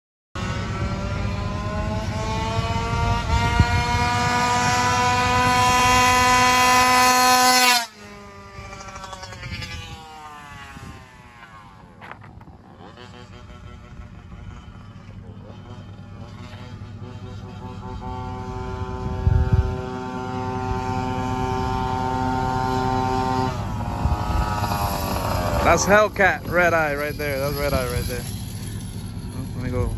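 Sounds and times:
two-stroke scooter engine revving: 0:00.4 - 0:29.9.

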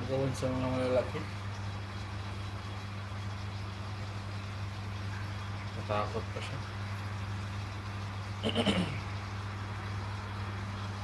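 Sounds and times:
aquarium pumps humming: 0:00.0 - 0:11.0.

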